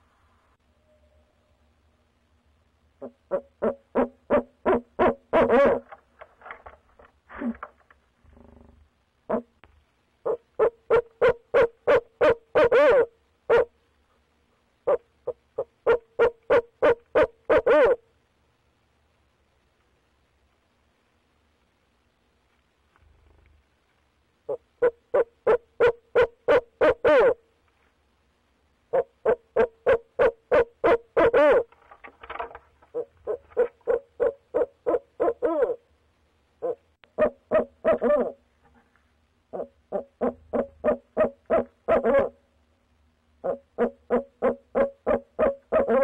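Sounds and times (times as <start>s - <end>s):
owl hooting: 3.0s - 6.0s, 9.3s - 9.6s, 10.2s - 13.7s, 14.8s - 18.1s, 24.4s - 27.4s, 28.9s - 31.7s, 32.9s - 35.9s, 36.6s - 38.4s, 39.5s - 42.4s, 43.4s - 46.0s.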